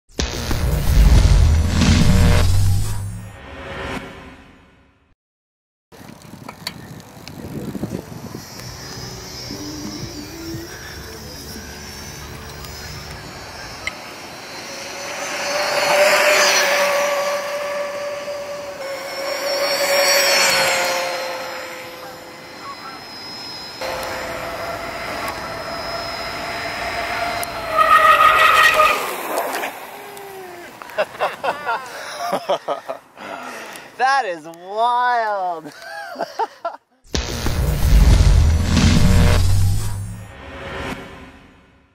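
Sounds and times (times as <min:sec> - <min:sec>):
tyre noise on asphalt: 0:06.0 - 0:08.8, 0:23.8 - 0:31.2
electric bike motor whining: 0:06.0 - 0:31.0.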